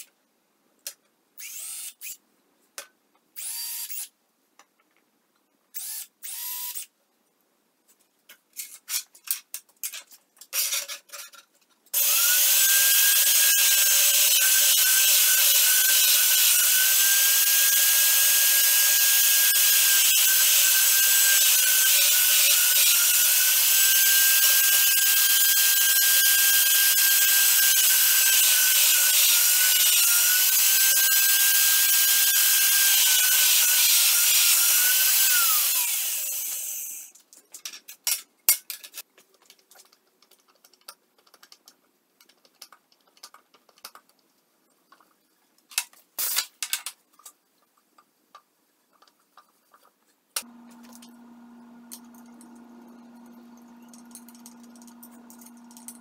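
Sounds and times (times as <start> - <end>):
drill motor whine: 1.4 - 2.2, 3.4 - 4.1, 5.8 - 6.8, 12.0 - 37.1
drill bit cutting metal: 12.0 - 37.0.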